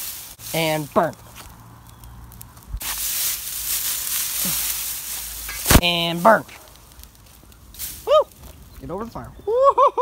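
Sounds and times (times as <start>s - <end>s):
fire hissing: 0.0s - 8.8s.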